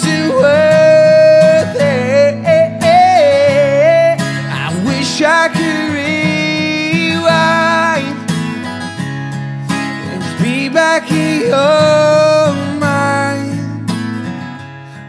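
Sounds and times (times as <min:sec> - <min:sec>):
strummed acoustic guitar: 0:00.0 - 0:15.0.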